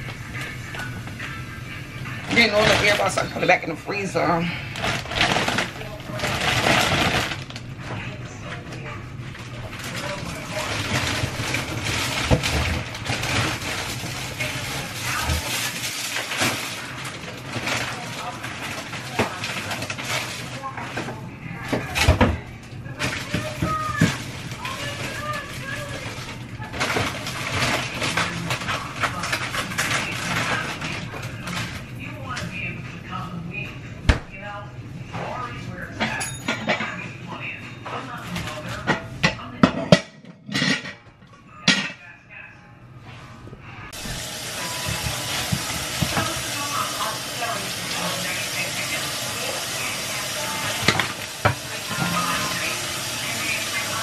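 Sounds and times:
kitchen clatter and knocks: 0:02.2 - 0:03.8, 0:04.8 - 0:08.8, 0:09.4 - 0:31.8, 0:35.1 - 0:42.0, 0:44.0 - 0:48.4, 0:50.4 - 0:54.0
plastic bag crinkling: 0:02.2 - 0:07.8, 0:09.2 - 0:21.1, 0:22.8 - 0:31.9, 0:44.0 - 0:54.0.

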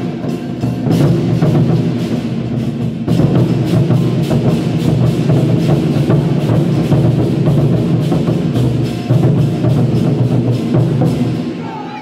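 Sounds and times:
drum ensemble playing fast: 0:00.0 - 0:12.0.

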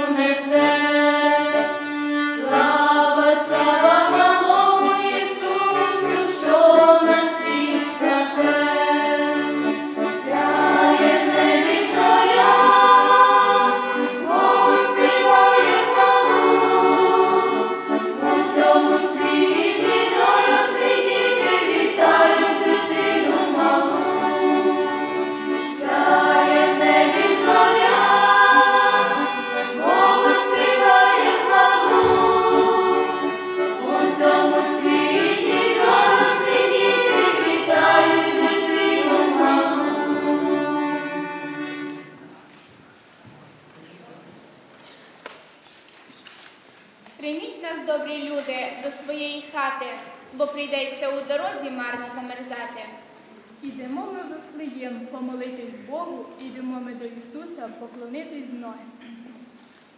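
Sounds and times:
choir singing a carol: 0:00.0 - 0:42.4.

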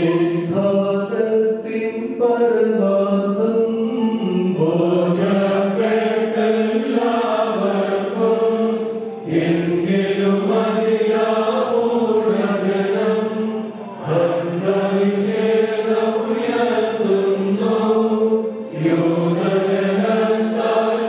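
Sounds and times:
choir chanting a hymn: 0:00.0 - 0:21.0.

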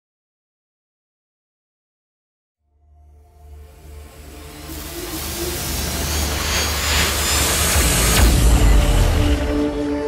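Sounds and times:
low drone: 0:02.6 - 0:10.0
rushing noise riser: 0:03.2 - 0:10.0
deep hit: 0:07.6 - 0:09.6.

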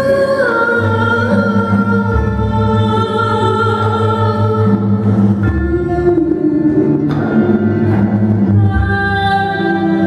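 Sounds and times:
oud: 0:00.0 - 0:10.0
woman singing: 0:00.0 - 0:10.0.

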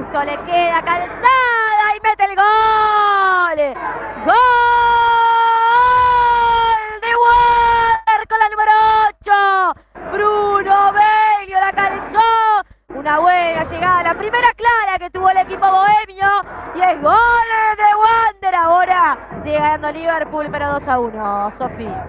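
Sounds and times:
female commentator shouting goal: 0:00.0 - 0:22.0.

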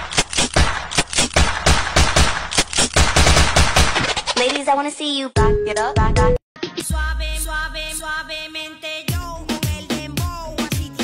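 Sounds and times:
rapid sharp cracks and thumps: 0:00.0 - 0:04.7.

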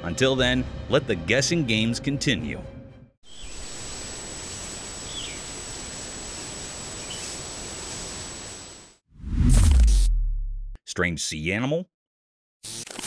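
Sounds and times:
even hiss: 0:03.3 - 0:09.0.

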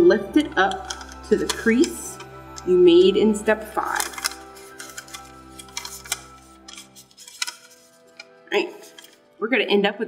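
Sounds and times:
background music with held notes: 0:00.0 - 0:10.0
paper crackling being creased: 0:03.8 - 0:09.3.

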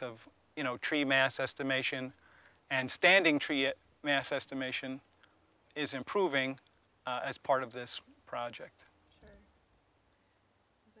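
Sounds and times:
high-pitched insect drone: 0:00.0 - 0:11.0.

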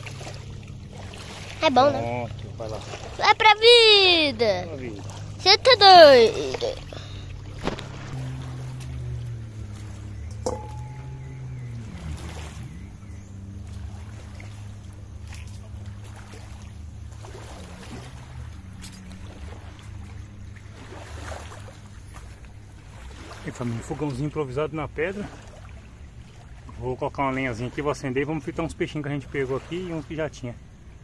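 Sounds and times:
low engine drone: 0:00.0 - 0:29.4.

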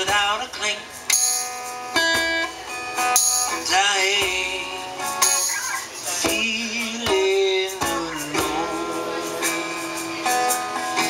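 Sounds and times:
acoustic guitar strummed chords: 0:00.0 - 0:11.0
hand percussion: 0:00.0 - 0:11.0.

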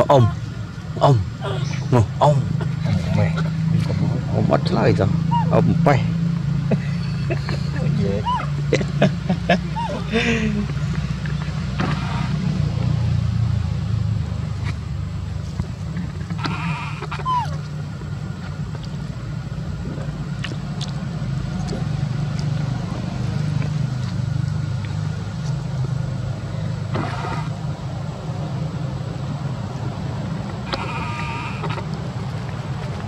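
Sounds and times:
macaque calling: 0:00.0 - 0:03.6, 0:05.0 - 0:05.8, 0:06.9 - 0:11.0, 0:16.3 - 0:17.8, 0:30.6 - 0:31.9
steady low rumble: 0:00.0 - 0:33.0.

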